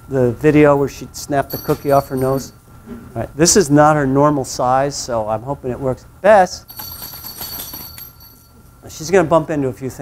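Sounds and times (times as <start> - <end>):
small bell ringing: 1.4 - 2.6, 6.6 - 8.7.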